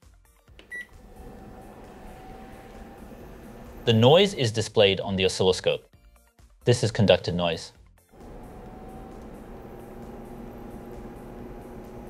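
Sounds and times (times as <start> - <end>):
induction cooktop hiss: 8.2 - 12.0.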